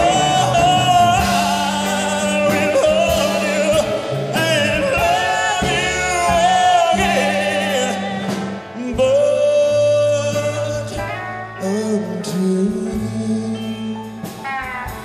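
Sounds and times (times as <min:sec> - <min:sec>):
live pop-rock band playing ballad: 0:00.0 - 0:15.0
man singing with vibrato: 0:00.0 - 0:15.0.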